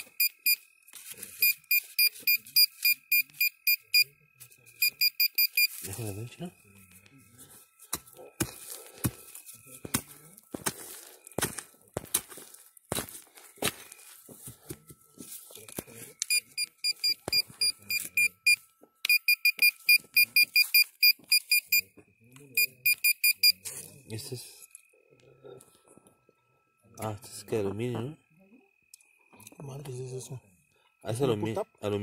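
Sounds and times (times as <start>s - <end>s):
metal detector rapid beeping: 0.0s - 4.2s, 4.8s - 6.4s, 16.2s - 21.9s, 22.6s - 23.6s
digging tool in soil: 7.4s - 16.4s.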